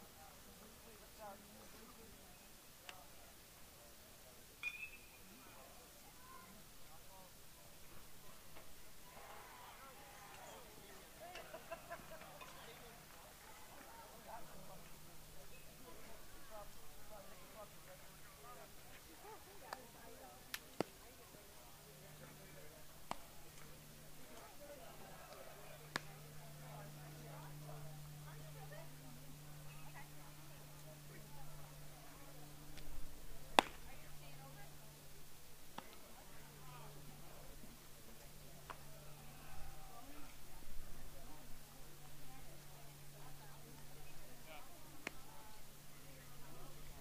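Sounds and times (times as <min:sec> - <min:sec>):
distant people talking: 0:00.0 - 0:47.0
faint distant voices: 0:00.0 - 0:47.0
steady low hum: 0:10.2 - 0:47.0
sharp crack of baseball: 0:25.9 - 0:26.2, 0:33.5 - 0:33.9.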